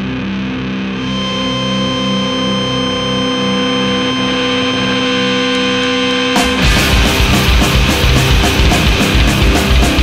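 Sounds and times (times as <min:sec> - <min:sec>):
electric guitar feedback: 0:00.0 - 0:10.0
pulsing low drone: 0:00.7 - 0:10.0.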